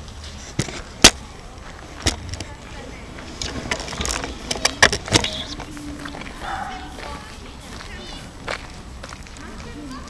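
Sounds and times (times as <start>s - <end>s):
faint voices: 0.4s - 10.0s.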